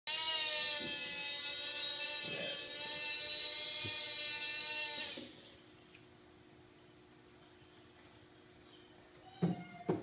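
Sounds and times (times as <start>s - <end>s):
quadcopter motors whining: 0.1s - 5.5s.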